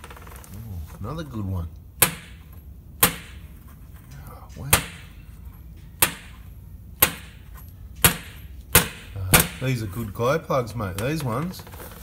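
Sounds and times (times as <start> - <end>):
sharp metallic knocks: 2.0 - 3.5, 6.0 - 9.7.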